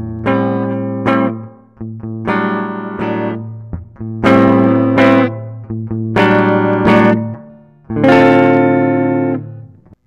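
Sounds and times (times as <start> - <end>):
electric guitar strummed: 0.0 - 10.0.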